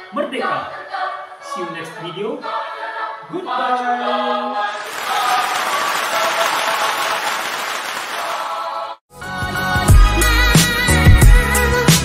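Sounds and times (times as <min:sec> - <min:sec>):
audience clapping: 0:04.8 - 0:08.9.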